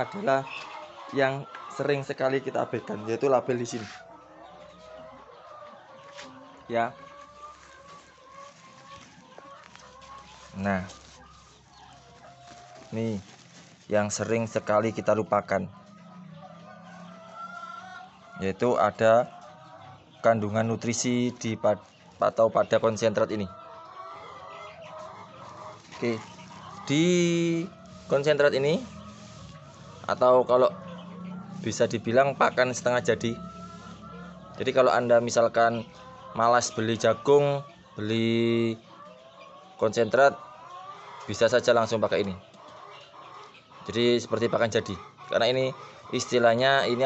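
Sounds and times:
hens clucking: 0:00.0 - 0:47.0.

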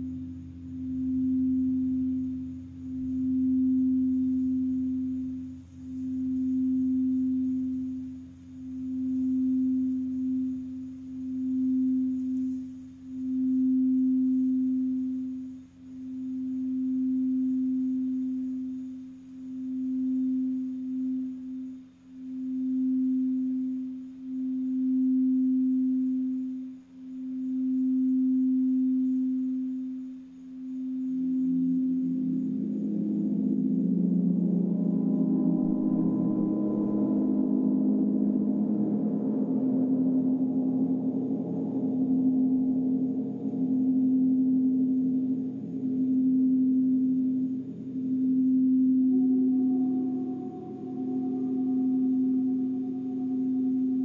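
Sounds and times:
singing bowl tone: 0:00.0 - 0:54.0.

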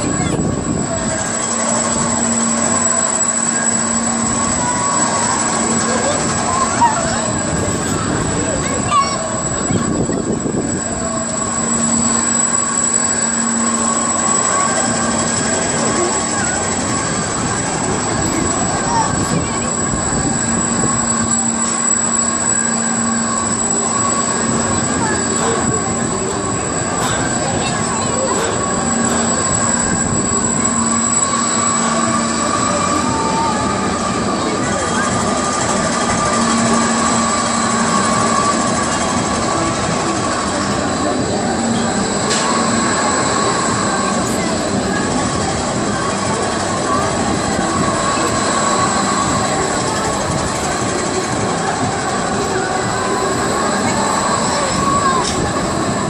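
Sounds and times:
ride machinery hum and whine: 0:00.0 - 0:56.0
voices of people: 0:00.0 - 0:56.0.

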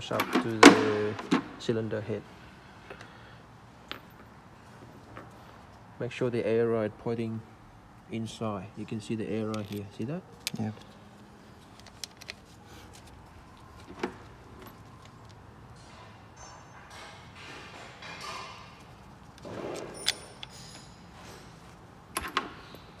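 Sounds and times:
metal parts clinking: 0:09.4 - 0:11.0, 0:18.0 - 0:23.0.

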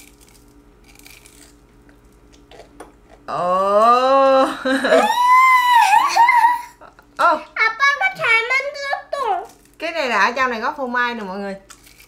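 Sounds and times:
biting and chewing: 0:00.0 - 0:03.3, 0:11.6 - 0:12.0
faint steady hum: 0:00.0 - 0:12.0.

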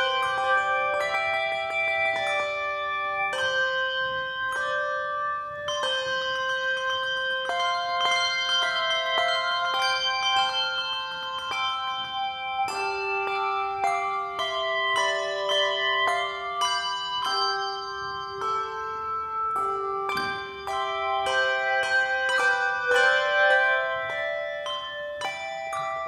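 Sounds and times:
handbell choir playing chords: 0:00.0 - 0:26.0.

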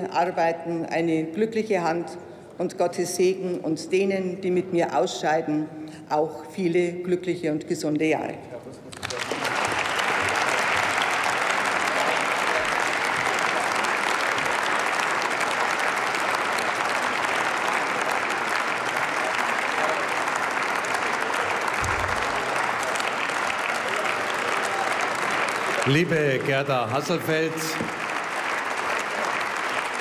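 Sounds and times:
crowd applauding: 0:08.9 - 0:30.0.

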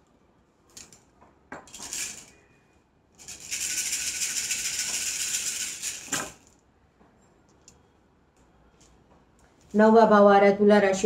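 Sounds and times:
shells clattering onto table: 0:01.6 - 0:02.4, 0:03.3 - 0:06.6
shells rattling in hands: 0:01.7 - 0:02.4, 0:03.2 - 0:06.6.

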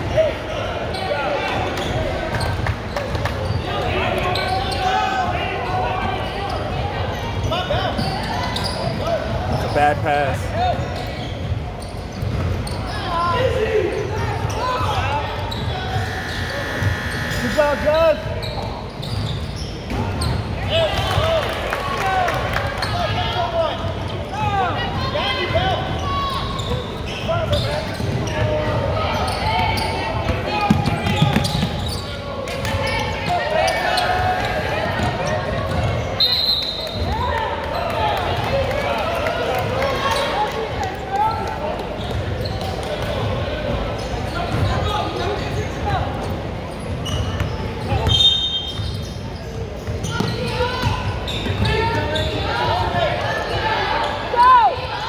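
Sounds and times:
voices calling out: 0:12.8 - 0:20.4.

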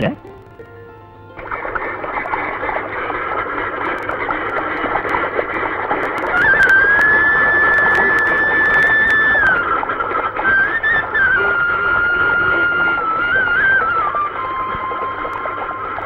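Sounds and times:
flock of ducks quacking: 0:01.4 - 0:06.8.

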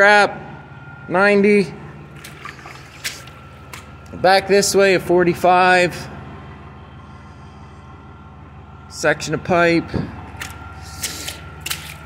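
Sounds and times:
portable generator humming: 0:00.0 - 0:12.0.

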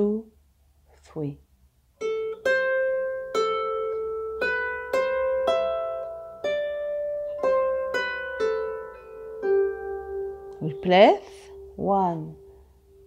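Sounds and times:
harp plucked notes: 0:02.0 - 0:13.0.

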